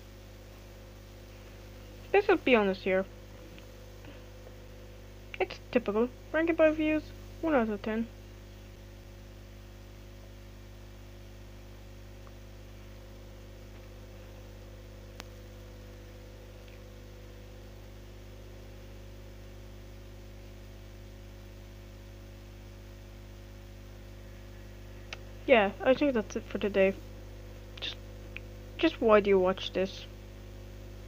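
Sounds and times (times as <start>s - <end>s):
electrical hum: 0.0s - 31.0s
faint click: 15.1s - 15.4s.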